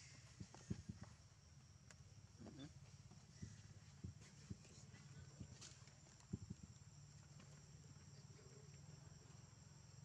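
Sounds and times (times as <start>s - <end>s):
high insect drone: 0.0s - 10.0s.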